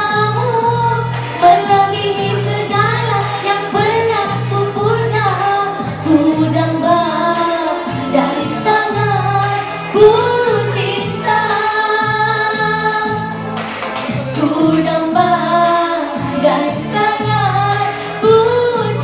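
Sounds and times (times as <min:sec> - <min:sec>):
woman singing through a pa: 0:00.0 - 0:13.4, 0:14.4 - 0:19.0
backing music with steady beat: 0:00.0 - 0:19.0.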